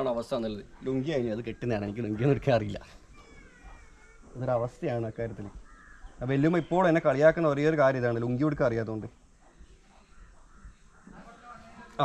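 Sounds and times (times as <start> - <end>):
man speaking: 0.0 - 3.0.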